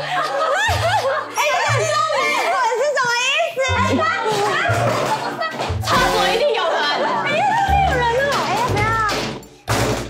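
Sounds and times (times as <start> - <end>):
high-pitched women's voices: 1.6 - 4.7.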